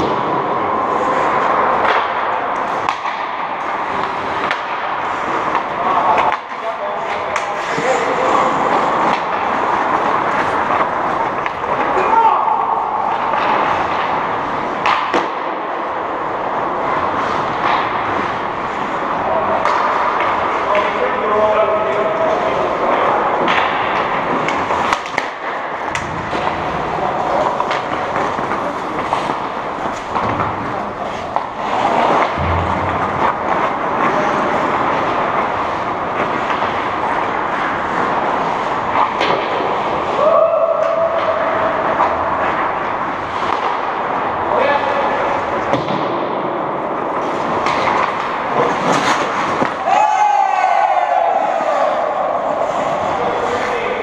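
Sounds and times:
hockey sticks and puck knocking: 0.0s - 54.0s
players' voices: 0.0s - 54.0s
skates on ice: 0.0s - 54.0s.

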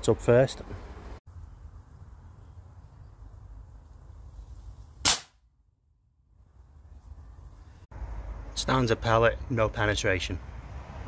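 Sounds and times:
air rifle shot: 5.0s - 5.4s
pellet striking metal plate: 5.0s - 5.4s.

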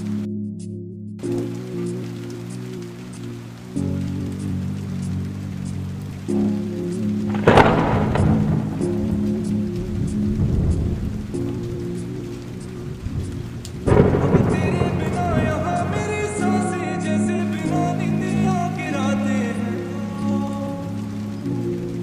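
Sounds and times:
slow lofi instrumental: 0.0s - 22.0s
steady rain: 1.2s - 22.0s
thunderclaps: 5.8s - 19.7s.

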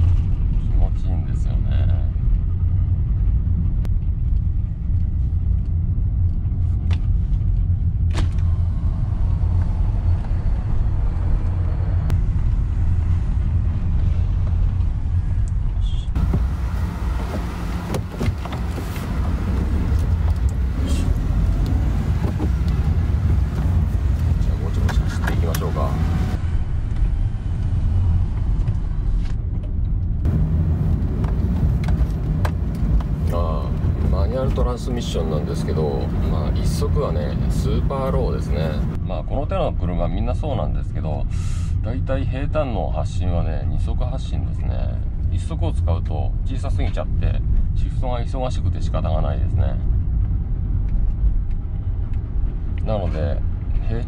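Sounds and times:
engine and road rumble inside car: 0.0s - 54.0s.

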